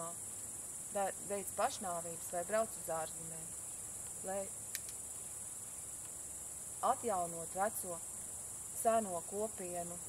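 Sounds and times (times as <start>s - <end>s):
crickets chirring: 0.0s - 10.0s
faint click: 4.0s - 5.0s.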